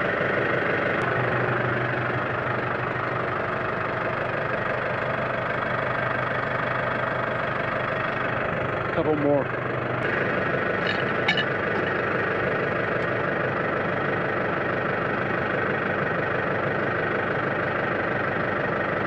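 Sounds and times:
diesel tractor engine idling: 0.0 - 19.0.

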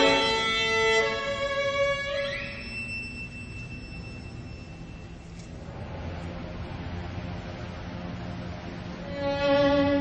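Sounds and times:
solo violin high note: 0.0 - 4.5
low hum of hall: 0.0 - 10.0.

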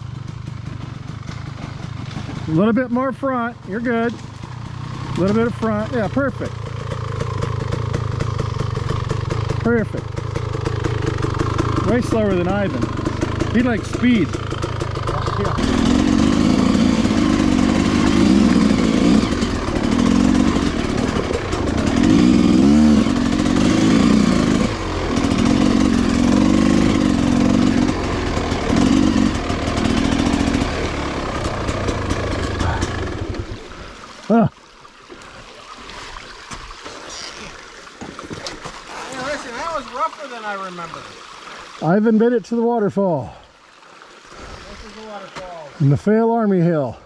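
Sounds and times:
dirt bike engine revving: 0.0 - 34.5.

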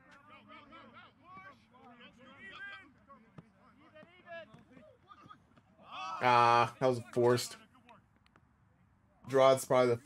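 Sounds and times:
rugby players calling out: 0.0 - 8.1.

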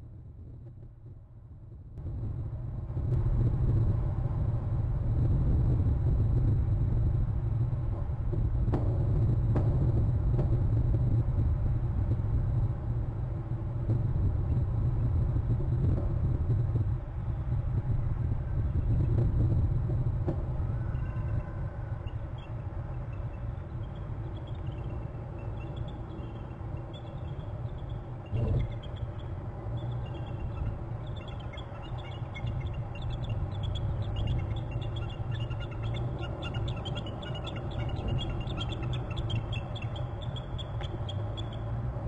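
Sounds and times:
steady low rumble: 0.0 - 42.0
eagles calling: 24.5 - 41.7.

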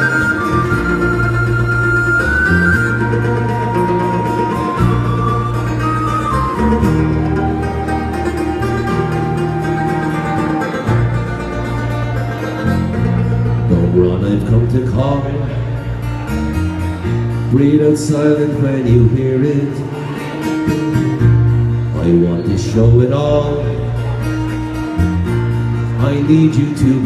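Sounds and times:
sliding melody line: 0.0 - 15.1
electric bass line: 0.0 - 19.1
banjo: 0.0 - 27.0
strummed acoustic guitar: 0.0 - 27.0.

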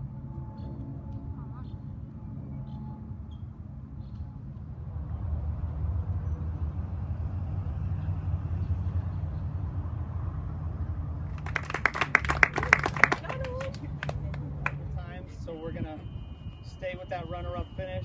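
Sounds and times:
low rumble: 0.0 - 18.0
group clapping: 11.3 - 14.8.

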